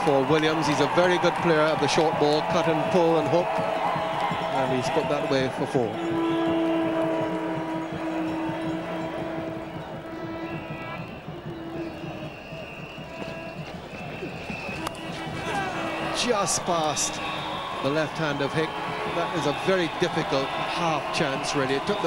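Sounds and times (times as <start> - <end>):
crowd background noise: 0.0 - 22.0
music with long held notes: 5.9 - 13.8.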